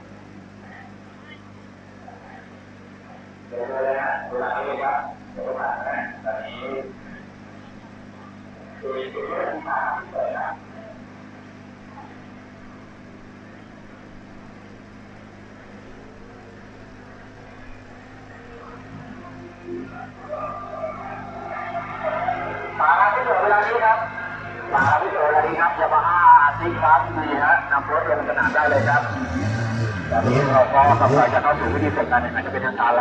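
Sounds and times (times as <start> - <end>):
low mechanical hum: 0.0 - 33.0
voices talking: 0.0 - 33.0.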